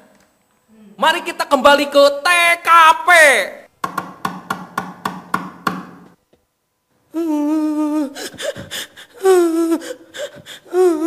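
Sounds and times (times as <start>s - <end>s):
wood block knocks: 3.8s - 6.2s.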